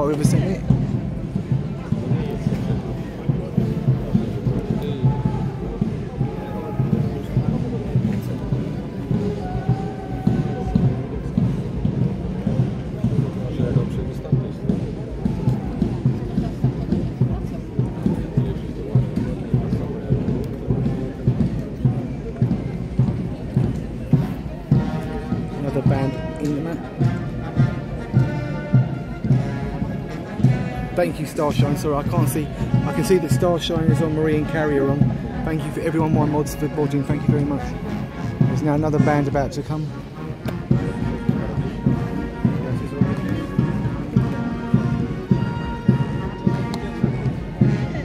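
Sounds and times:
crowd voices: 0.0s - 48.0s
marching band brass: 0.0s - 48.0s
steady drum beat: 0.0s - 48.0s.

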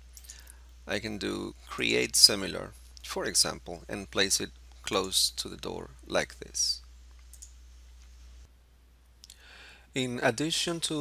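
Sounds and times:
computer mouse click: 7.2s - 7.6s.

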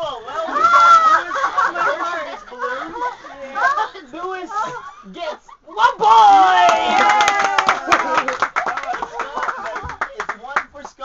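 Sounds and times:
loud excited voices: 0.0s - 10.4s
people clapping: 6.4s - 11.0s.

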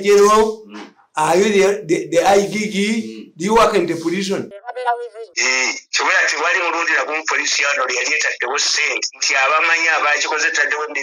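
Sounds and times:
person talking over phone: 1.8s - 11.0s.

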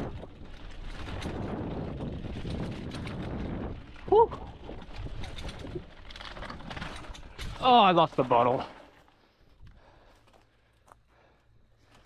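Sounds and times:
bike rattling: 0.0s - 12.0s
bike tyres rolling on dirt: 0.0s - 12.0s.

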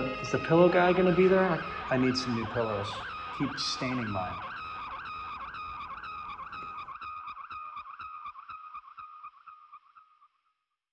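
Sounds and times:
wavering high-pitched squeal: 0.0s - 9.3s.

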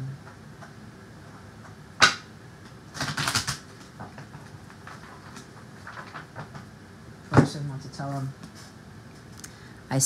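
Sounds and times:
cards being shuffled: 2.9s - 6.6s.

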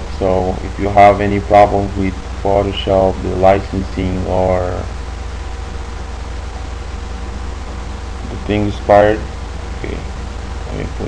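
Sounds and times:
even hiss: 0.0s - 11.0s
faint mid-range tone: 0.0s - 11.0s
low hum: 0.0s - 11.0s.

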